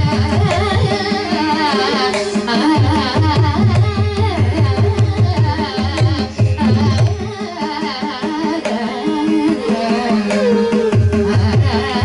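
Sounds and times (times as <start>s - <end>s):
violin accompaniment: 0.0s - 12.0s
woman singing ornamented melody: 0.0s - 12.0s.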